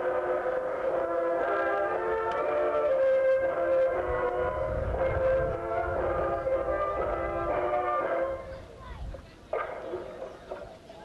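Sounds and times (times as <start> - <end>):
band playing horn-like chords: 0.0 - 8.5.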